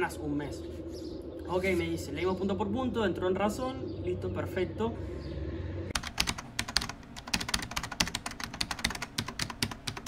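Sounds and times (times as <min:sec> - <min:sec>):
computer keyboard typing: 0:05.9 - 0:10.0.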